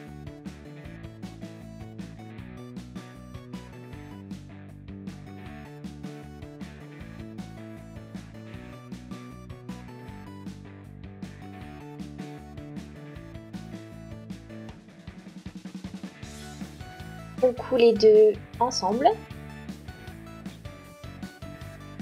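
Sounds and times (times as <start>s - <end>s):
background music with drum beat: 0.0s - 22.0s.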